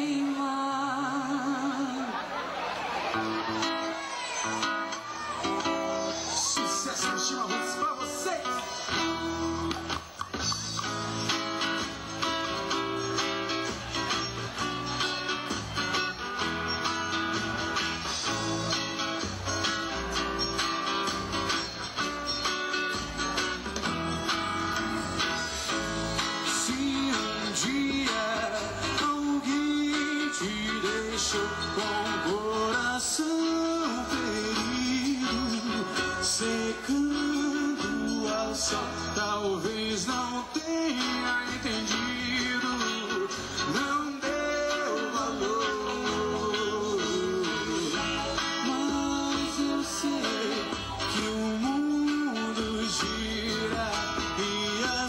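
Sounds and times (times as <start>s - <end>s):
guitar: 0.0s - 55.0s
live band playing: 2.1s - 55.0s.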